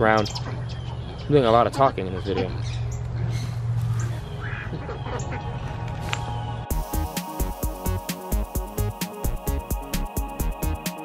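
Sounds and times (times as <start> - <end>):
bird calls: 0.0 - 6.7
electronic music with fast beat: 6.7 - 11.0.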